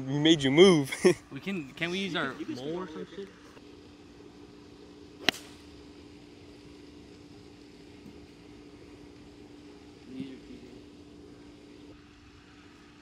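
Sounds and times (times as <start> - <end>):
faint low hum: 0.0 - 13.0
golf club striking ball: 5.2 - 5.7.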